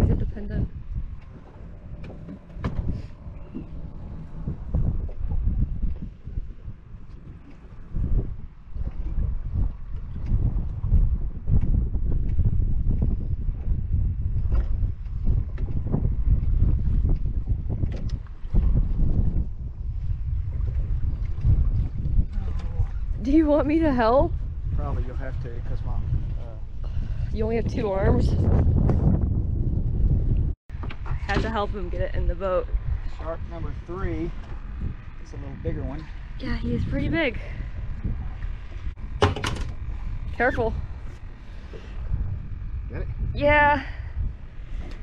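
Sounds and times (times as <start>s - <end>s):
water slapping boat side: 0.0s - 28.6s, 30.7s - 32.6s, 33.2s - 42.3s
wind buffeting microphone: 0.0s - 45.0s
knocks and splashes: 39.0s - 40.0s.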